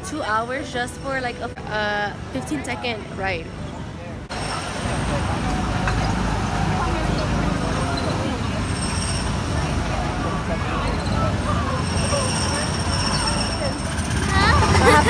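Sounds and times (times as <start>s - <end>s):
crowd chatter: 0.0s - 15.0s
small car engines running: 4.3s - 15.0s.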